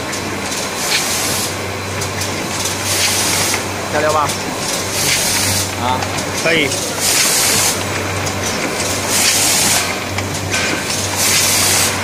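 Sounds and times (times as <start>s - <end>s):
machine low hum: 0.0s - 12.0s
pneumatic air hiss: 11.2s - 12.0s.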